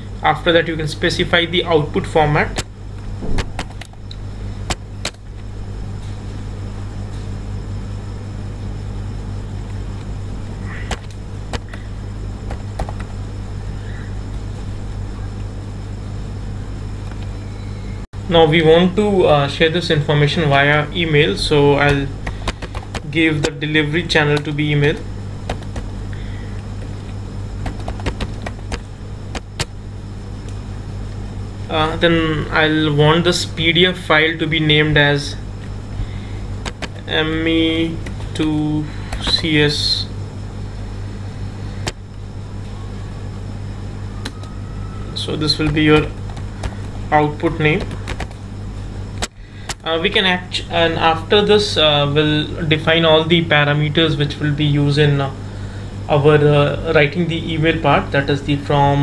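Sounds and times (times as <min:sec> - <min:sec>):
steady low hum: 0:00.0 - 0:59.0
keyboard keystrokes: 0:10.9 - 0:11.8, 0:12.5 - 0:13.1, 0:22.2 - 0:23.1, 0:27.6 - 0:29.7, 0:36.6 - 0:37.1, 0:47.8 - 0:48.4.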